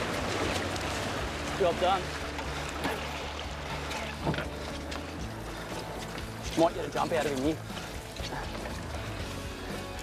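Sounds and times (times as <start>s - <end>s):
outboard motors humming: 0.0s - 10.0s
water washing along hull: 0.0s - 10.0s.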